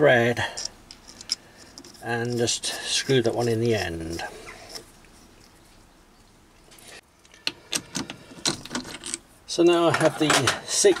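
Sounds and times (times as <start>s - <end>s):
quiet handling: 0.0s - 11.0s.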